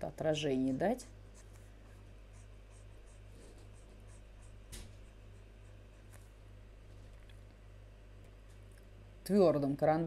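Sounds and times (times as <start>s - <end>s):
low steady hum: 0.0s - 10.0s
stylus scratching on tablet: 1.3s - 6.3s.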